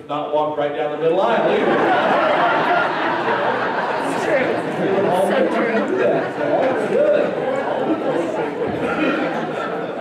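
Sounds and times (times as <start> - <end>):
congregation chatter: 1.0 - 10.0.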